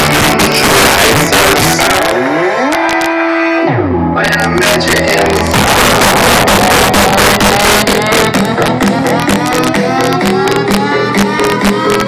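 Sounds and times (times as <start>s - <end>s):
loud filtered music from car speakers: 0.0s - 12.0s
synth tone sliding into bass: 0.0s - 12.0s.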